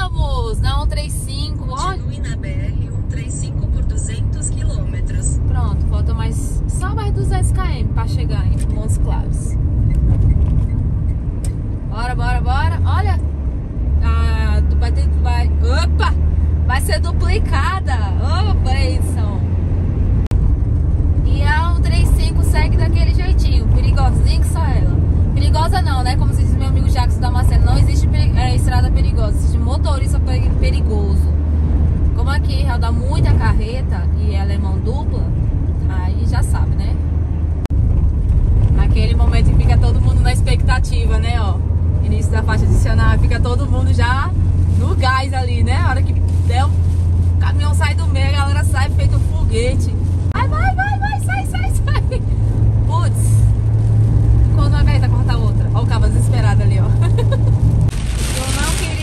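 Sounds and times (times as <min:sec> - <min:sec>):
road and engine rumble in car: 0:00.0 - 0:59.0.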